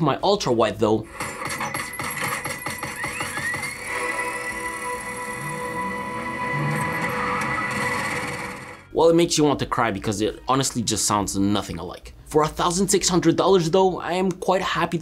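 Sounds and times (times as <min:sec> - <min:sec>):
rising tone sweep: 0:03.8 - 0:08.9
long held note: 0:03.9 - 0:08.4.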